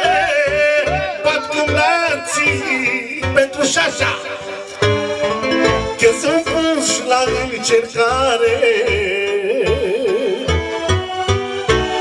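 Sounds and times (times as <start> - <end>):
man singing melismatic line: 0.0 - 4.6, 6.0 - 10.7.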